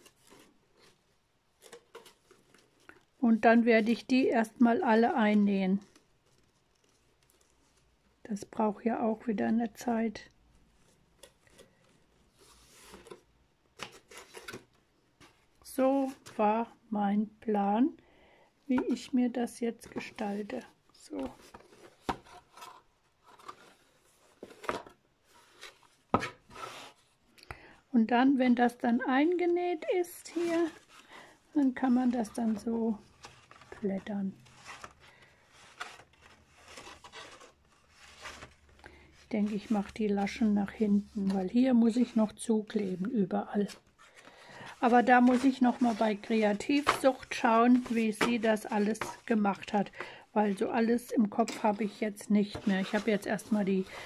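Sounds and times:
paper envelopes rustling: 0:19.8 - 0:27.2, 0:29.3 - 0:54.0
paper sliding: 0:44.2 - 0:49.2.

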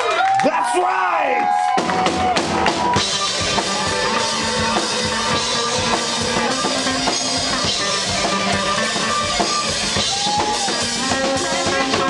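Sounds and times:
live band with drum beat: 0:01.3 - 0:12.0.

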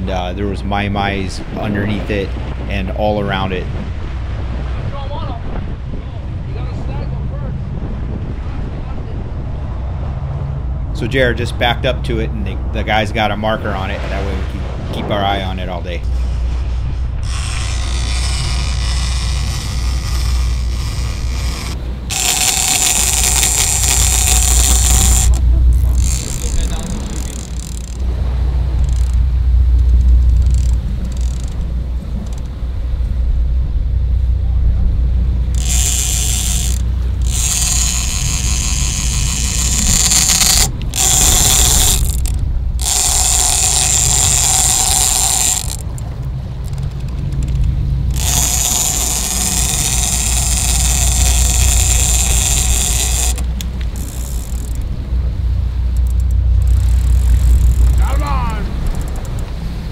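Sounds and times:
steady low rumble: 0:00.0 - 0:59.9
fishing reel running: 0:17.2 - 0:32.6, 0:35.4 - 0:55.0, 0:55.8 - 0:59.5.

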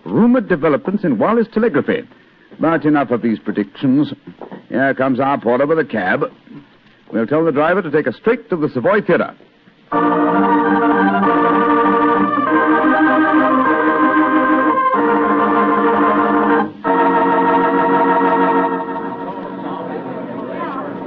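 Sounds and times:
organ chords: 0:09.9 - 0:21.0.

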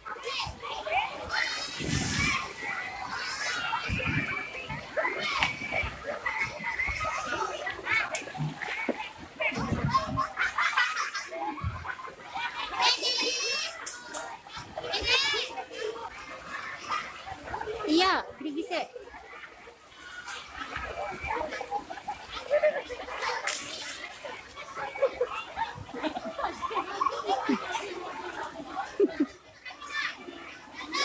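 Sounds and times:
children calling and chattering: 0:00.0 - 0:31.0.

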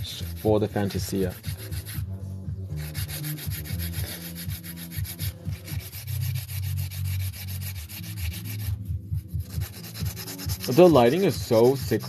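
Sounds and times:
nail file rubbing: 0:00.0 - 0:02.0, 0:02.8 - 0:12.0.

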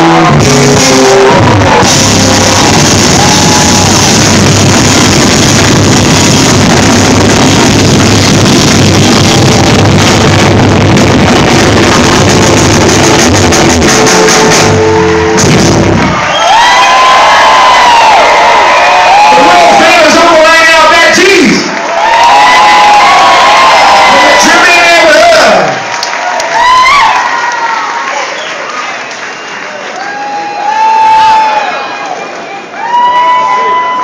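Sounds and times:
live band playing loud: 0:00.0 - 0:16.8
crowd shouting and cheering: 0:00.0 - 0:34.0.

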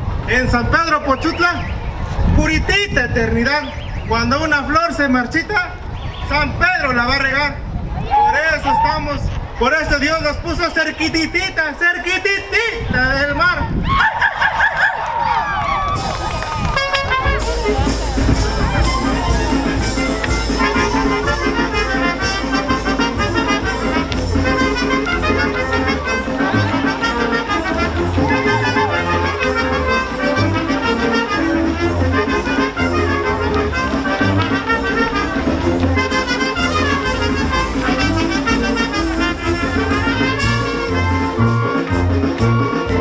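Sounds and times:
brass band playing: 0:15.9 - 0:43.0
trumpets melody: 0:16.0 - 0:43.0
low bass pulse: 0:16.2 - 0:43.0.

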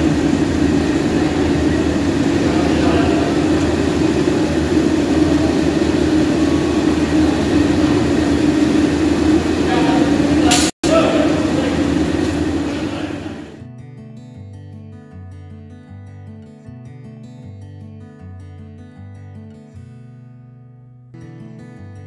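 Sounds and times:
loud mechanical drone: 0:00.0 - 0:13.6
faint voices: 0:01.0 - 0:13.6.

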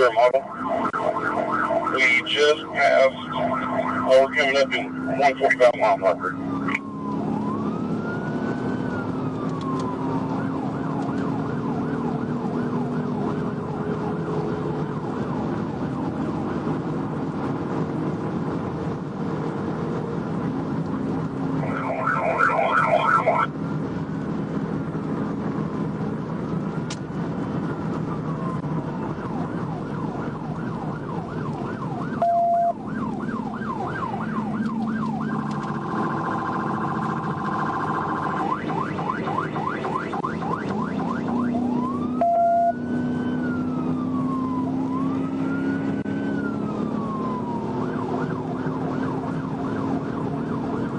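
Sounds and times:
engine and road noise: 0:00.0 - 0:50.9
police siren yelp and wail: 0:00.0 - 0:50.9.

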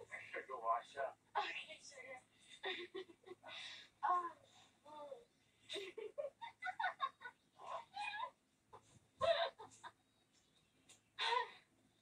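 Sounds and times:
people giggling: 0:02.6 - 0:03.5, 0:05.7 - 0:07.8, 0:09.2 - 0:10.0.

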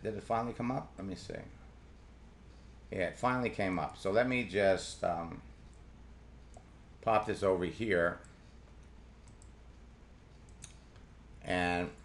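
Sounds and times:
low steady hum: 0:00.0 - 0:12.0
computer mouse clicks: 0:08.2 - 0:09.6, 0:10.3 - 0:11.1.

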